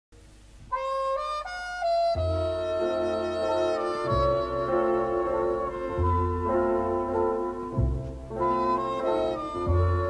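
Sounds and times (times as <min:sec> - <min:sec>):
instrumental music: 0:00.2 - 0:10.0.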